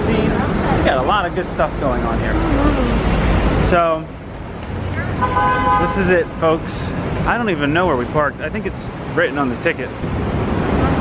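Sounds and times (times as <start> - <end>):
city street traffic: 0.0 - 11.0
car horn honk: 4.9 - 6.2.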